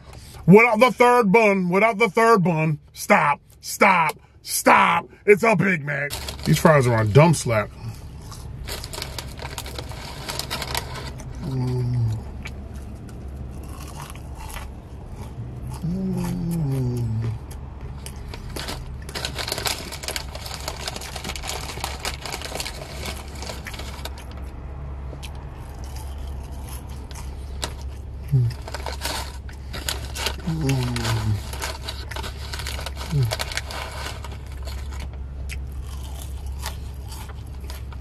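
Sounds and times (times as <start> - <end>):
chewing fries: 6.1 - 38.0
person humming mmm: 11.4 - 12.2, 15.8 - 17.4, 28.3 - 28.6, 30.4 - 31.4.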